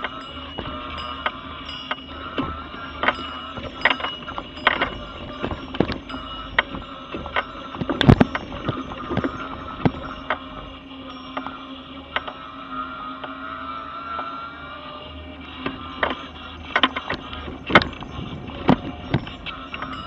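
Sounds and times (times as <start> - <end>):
knocks and rattles: 0.0 - 11.6, 16.8 - 20.0
electric motor whine: 0.0 - 20.0.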